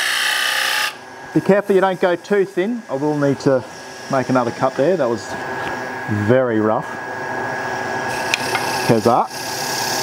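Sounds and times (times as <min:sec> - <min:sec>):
wood lathe motor hum: 0:00.0 - 0:10.0.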